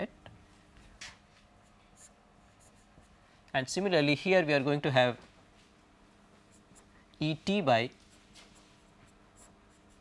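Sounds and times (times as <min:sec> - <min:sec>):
marker pen on whiteboard: 0:00.9 - 0:03.2, 0:06.3 - 0:10.0
person speaking: 0:07.2 - 0:08.1.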